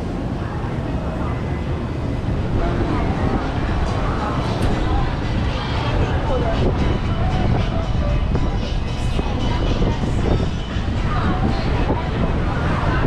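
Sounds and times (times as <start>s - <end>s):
many people talking: 0.0s - 13.0s
vehicles passing: 0.0s - 13.0s
low rumble: 1.7s - 13.0s
music playing: 2.3s - 13.0s.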